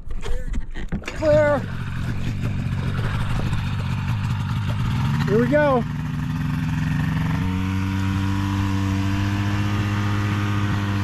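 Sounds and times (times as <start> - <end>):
small plane engine and propeller: 1.0 - 11.0.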